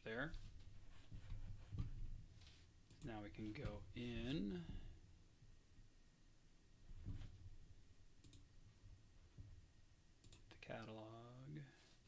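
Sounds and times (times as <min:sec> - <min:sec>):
computer mouse clicks: 0:08.2 - 0:08.5, 0:10.2 - 0:10.9.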